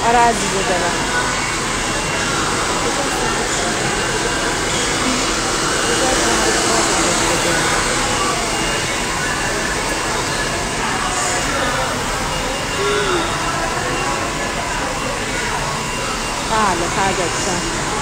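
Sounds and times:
hair dryer running: 0.0 - 18.0.

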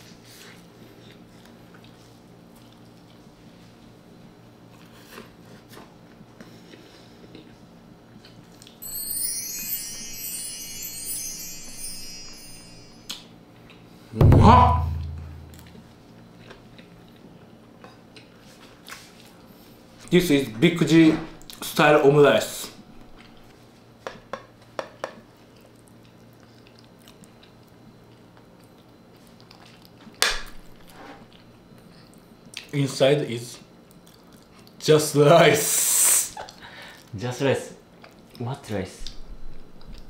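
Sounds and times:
tinkling high chime notes: 8.8 - 13.3.

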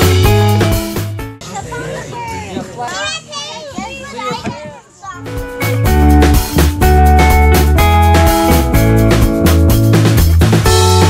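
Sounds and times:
young children chattering: 1.4 - 5.6.

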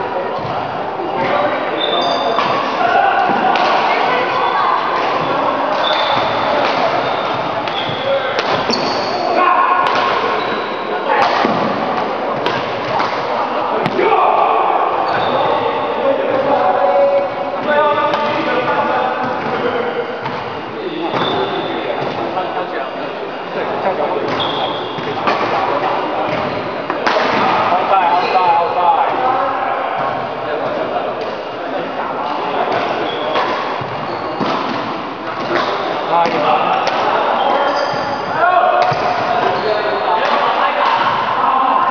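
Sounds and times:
onlookers' voices: 0.0 - 41.9
racket hitting shuttlecock: 3.3 - 3.9, 5.1 - 7.0, 7.6 - 8.9, 9.8 - 10.4, 25.0 - 27.6, 32.7 - 37.1.

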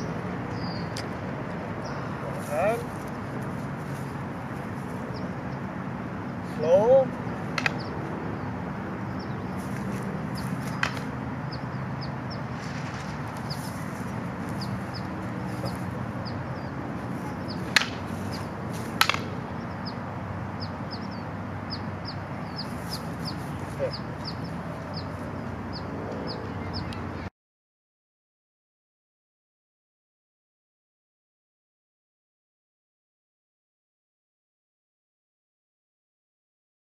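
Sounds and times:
birds chirping: 0.0 - 27.3
wooden sticks clacking: 7.5 - 7.8, 10.5 - 11.2, 17.6 - 19.4.

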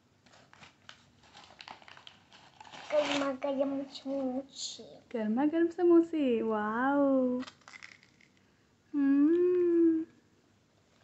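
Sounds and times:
paper bag rustling: 0.3 - 4.4.

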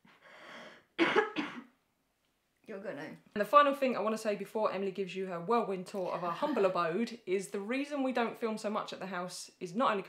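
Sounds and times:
woman coughing: 1.0 - 1.8.

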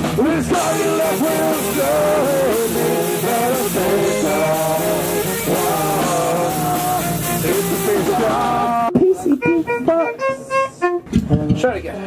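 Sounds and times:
ska-punk band playing: 0.0 - 11.1
electric guitar notes: 0.0 - 11.2.

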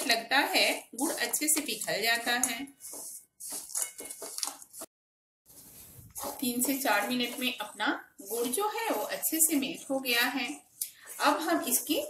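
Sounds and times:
spatula scraping in a pan: 0.0 - 4.9, 5.5 - 12.0.

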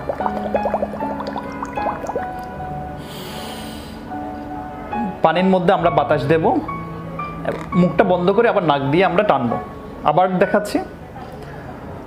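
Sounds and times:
bubbling through a straw in water: 0.0 - 2.5
breath drawn in: 3.0 - 4.1.

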